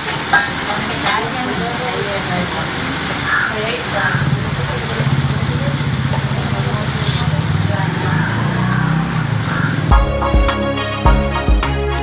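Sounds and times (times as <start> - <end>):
music sting: 9.9 - 12.0.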